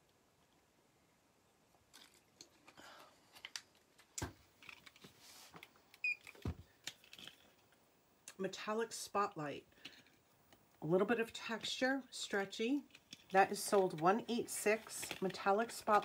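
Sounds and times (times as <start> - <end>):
objects clicking and knocking: 1.9 - 5.1, 6.3 - 7.8, 12.8 - 16.0.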